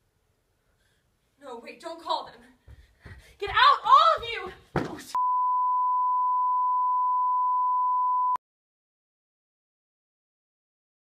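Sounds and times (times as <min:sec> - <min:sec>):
electronic beep tone: 0:05.2 - 0:08.4.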